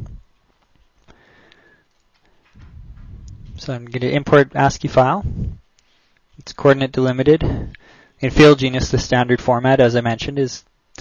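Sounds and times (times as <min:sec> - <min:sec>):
faint breathing: 0:01.0 - 0:03.6, 0:07.4 - 0:08.2.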